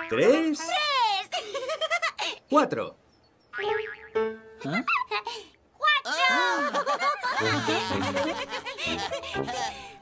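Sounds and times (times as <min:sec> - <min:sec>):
cartoon boing sound effect: 0:03.6 - 0:04.8.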